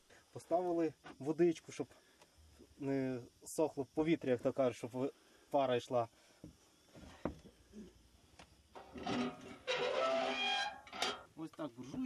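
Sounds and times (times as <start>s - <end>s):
drawn-out creak: 8.8s - 11.2s.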